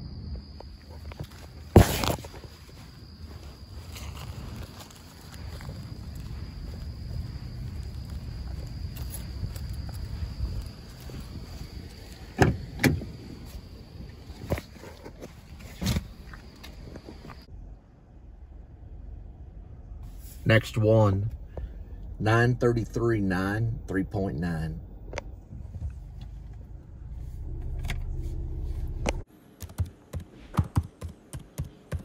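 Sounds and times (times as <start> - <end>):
high insect trill: 0.0 - 17.5
low rumble of movement: 0.0 - 20.4, 21.2 - 22.2, 24.8 - 29.3
car door shutting: 12.2 - 13.3.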